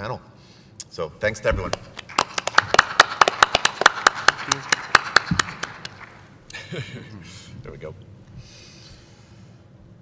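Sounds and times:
small group clapping: 1.7s - 6.3s.

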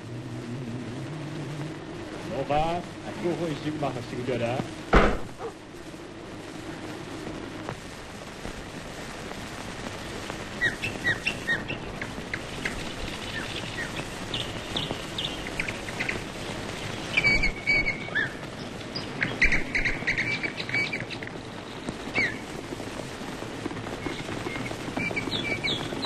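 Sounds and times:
steady soundtrack hiss: 0.0s - 26.0s
birds chirping: 10.4s - 22.9s, 23.7s - 26.0s
bird whistles: 17.1s - 18.4s.

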